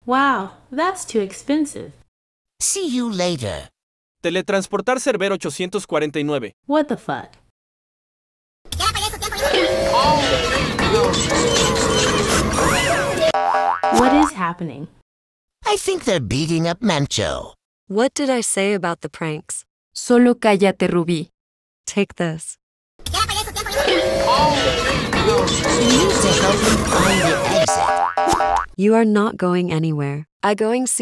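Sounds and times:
springy wobbling boing: 0:13.4 - 0:14.3, 0:27.7 - 0:28.7.

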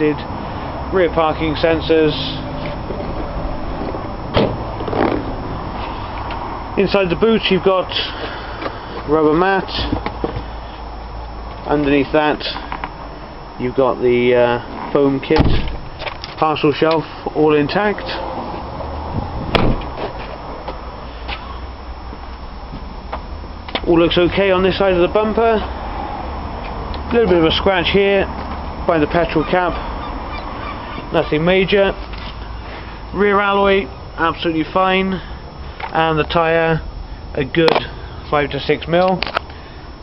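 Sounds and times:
steady background rumble: 0:00.0 - 0:40.0
car tailgate slamming: 0:03.8 - 0:05.3, 0:15.3 - 0:15.9, 0:19.5 - 0:20.1.

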